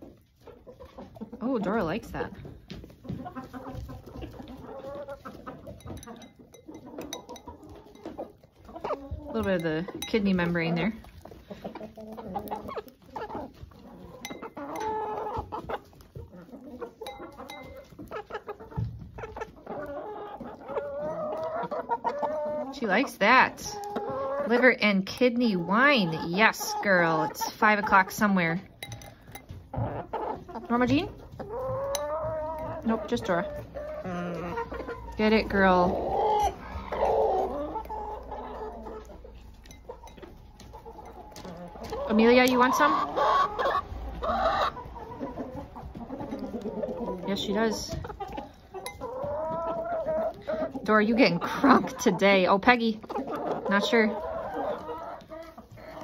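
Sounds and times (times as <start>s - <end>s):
hens clucking: 0.0s - 56.0s.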